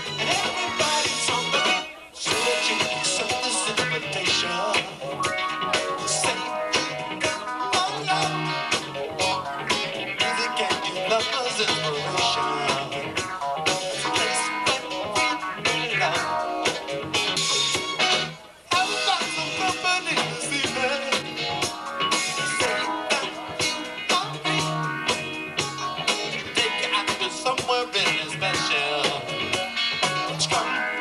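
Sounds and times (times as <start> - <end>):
electric guitar: 0.0 - 31.0
rock band playing live: 0.0 - 31.0.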